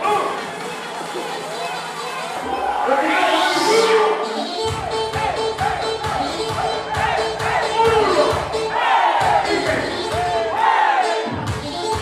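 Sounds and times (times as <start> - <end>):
loud dance music: 0.0 - 12.0
crowd shouting together: 1.5 - 11.3.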